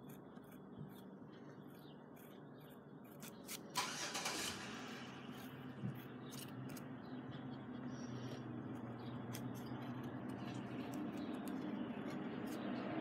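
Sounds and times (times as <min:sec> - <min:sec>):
pen scratching on paper: 0:00.0 - 0:03.6, 0:05.1 - 0:06.8, 0:07.9 - 0:13.0
low steady hum: 0:00.0 - 0:13.0.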